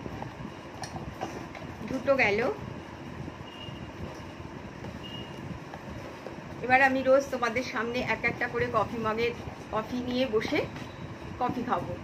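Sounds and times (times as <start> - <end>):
electric fan running: 0.0 - 12.0.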